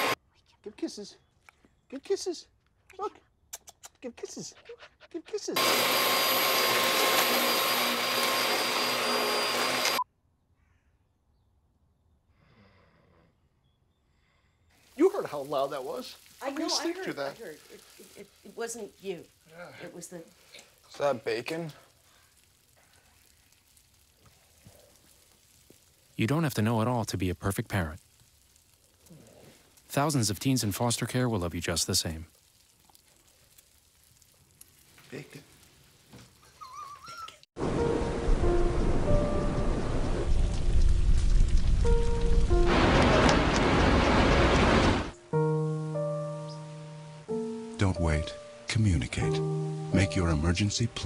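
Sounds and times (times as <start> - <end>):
upright vacuum cleaner running: 5.6 - 10.0
light crackles: 14.7 - 50.9
bacon sizzling in a pan: 14.8 - 30.0, 31.5 - 37.2.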